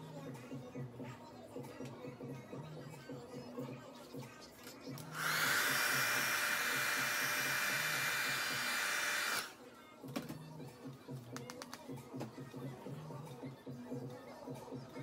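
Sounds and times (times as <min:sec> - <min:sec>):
hair dryer whine: 0:05.0 - 0:09.6.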